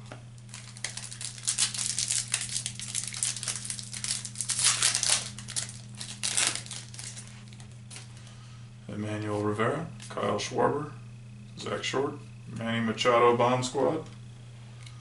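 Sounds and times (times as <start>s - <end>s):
steady low hum: 0.0s - 15.0s
foil wrapper tearing and crinkling: 0.5s - 8.0s.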